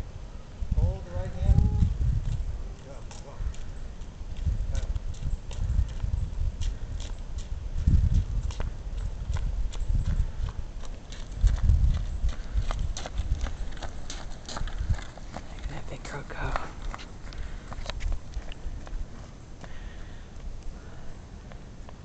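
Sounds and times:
wind rumbling on microphone: 0:00.0 - 0:22.0.

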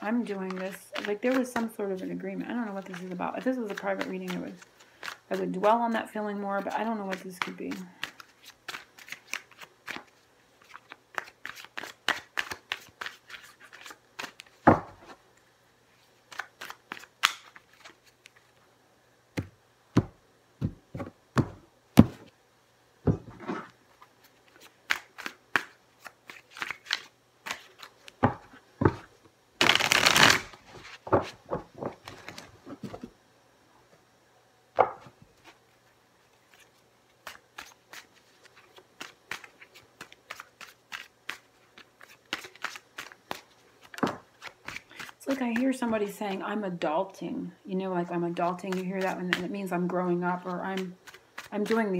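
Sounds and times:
cards shuffled by hand: 0:00.2 - 0:14.7, 0:16.1 - 0:18.6, 0:23.4 - 0:33.1, 0:36.4 - 0:46.4, 0:48.4 - 0:49.6, 0:50.3 - 0:51.9.

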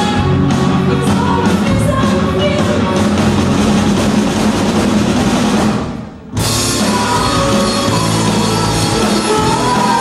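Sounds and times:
drums and cymbals: 0:00.0 - 0:10.0
live rock band playing: 0:00.0 - 0:10.0.

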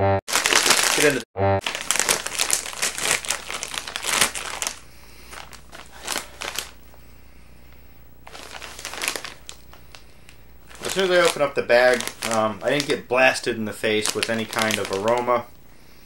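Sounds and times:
plastic snack bag crinkling: 0:00.3 - 0:07.0, 0:08.2 - 0:15.6.

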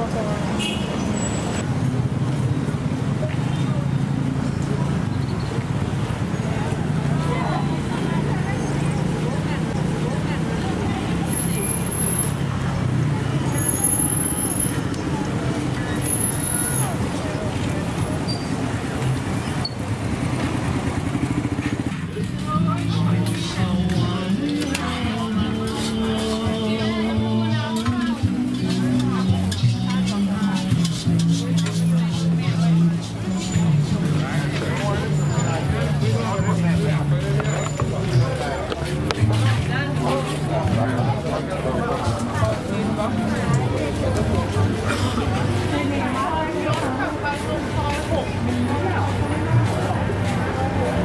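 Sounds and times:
low traffic rumble: 0:00.0 - 0:51.0
people talking: 0:00.0 - 0:51.0.

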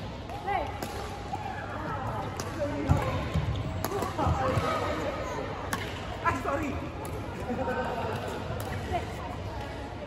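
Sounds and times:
voices in a hall: 0:00.0 - 0:10.0
racket hitting shuttlecock: 0:00.3 - 0:01.6, 0:02.3 - 0:04.7.

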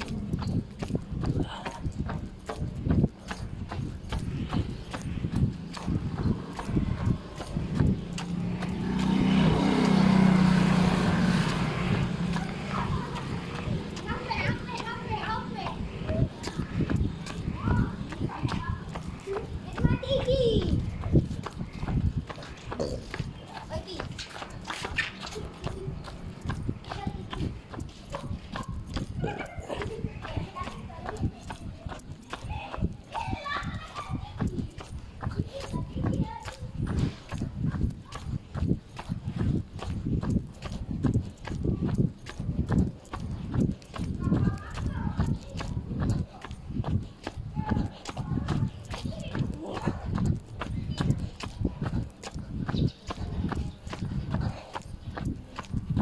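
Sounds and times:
indistinct voices: 0:00.0 - 0:56.0.

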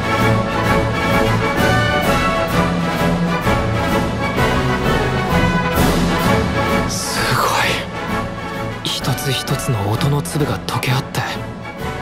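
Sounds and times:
symphony orchestra playing: 0:00.0 - 0:10.5.

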